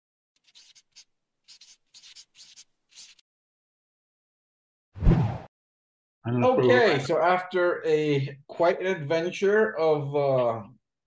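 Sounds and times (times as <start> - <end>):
pen scratching on paper: 0.4 - 3.2.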